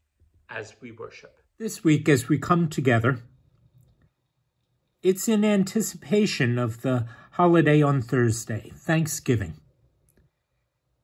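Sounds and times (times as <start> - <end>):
man speaking: 0.5 - 3.3, 5.0 - 9.6.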